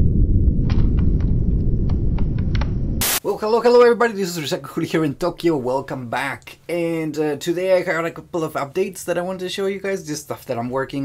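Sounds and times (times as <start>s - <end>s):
heavy low rumble: 0.0s - 3.2s.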